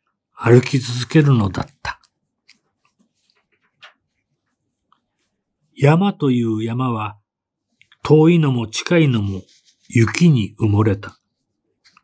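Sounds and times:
person speaking: 0.4 - 2.2, 7.8 - 11.2.

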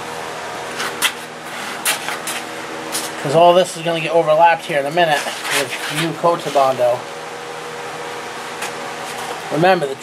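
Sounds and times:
ventilation hiss: 0.0 - 10.0.

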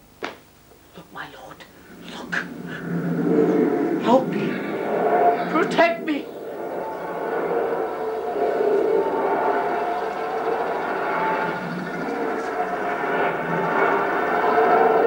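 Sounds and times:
faint held tones: 1.6 - 15.0
rushing droning sound effect: 1.6 - 15.0.

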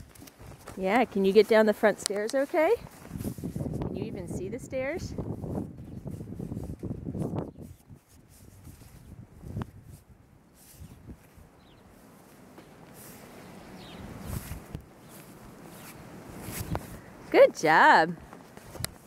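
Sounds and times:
footsteps crunching in snow: 0.0 - 4.0, 5.2 - 17.0
clothing rustling: 14.2 - 17.0.

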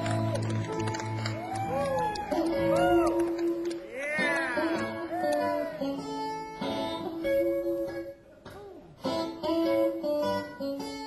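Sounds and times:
blues band playing: 0.0 - 11.0
electric guitar bending notes: 0.0 - 11.0.

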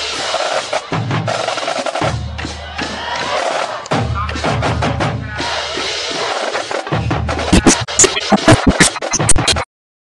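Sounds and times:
band playing fight song: 0.0 - 9.6
sharp drum strikes: 7.4 - 9.6.

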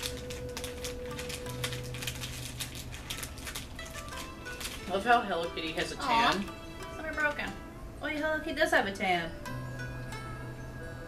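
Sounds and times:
plastic wrapper crinkling: 0.0 - 6.6
quiet background music: 0.0 - 11.0.

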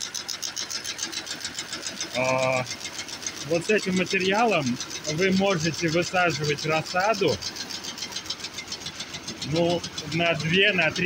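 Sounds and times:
quilting machine stitching: 0.0 - 11.0.

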